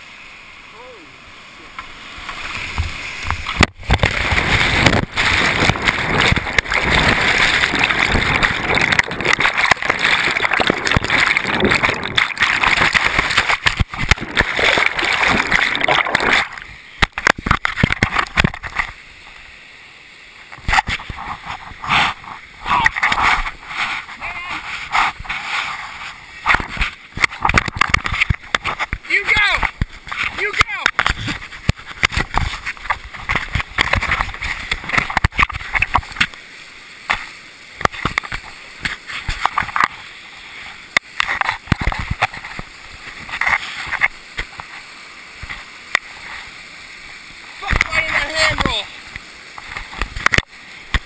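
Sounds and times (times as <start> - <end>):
water splashing: 0.0 - 51.0
whitewater rapids rushing: 0.0 - 51.0.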